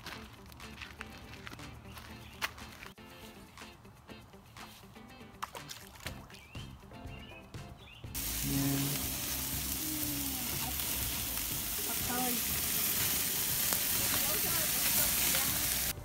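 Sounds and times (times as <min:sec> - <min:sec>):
background music held notes: 0:00.0 - 0:16.0.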